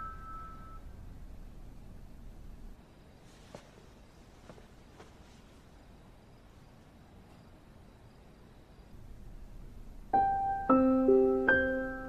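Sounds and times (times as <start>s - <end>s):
faint steady background: 0.0s - 12.0s
piano notes ringing: 10.0s - 12.0s.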